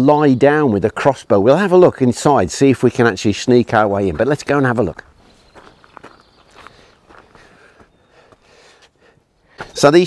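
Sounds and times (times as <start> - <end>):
footsteps on gravel and stone: 4.0 - 8.9, 9.6 - 10.0.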